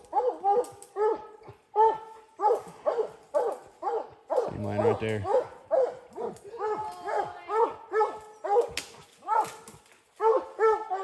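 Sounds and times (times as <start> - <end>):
dog barking: 0.0 - 11.0.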